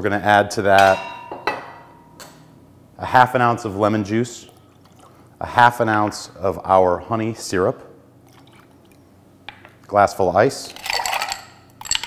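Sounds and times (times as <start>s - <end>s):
syrup dribbling into glass: 10.7s - 12.0s.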